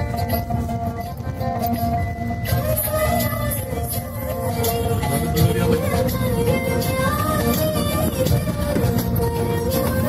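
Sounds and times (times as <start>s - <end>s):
car rumble: 0.0s - 10.0s
music from car stereo: 0.0s - 10.0s.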